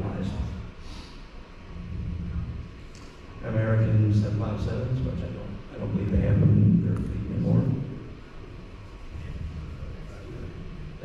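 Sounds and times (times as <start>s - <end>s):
low steady room rumble: 0.0s - 11.0s.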